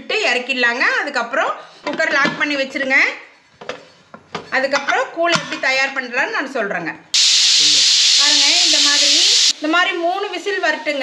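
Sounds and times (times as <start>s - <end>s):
woman talking: 8.2s - 11.0s.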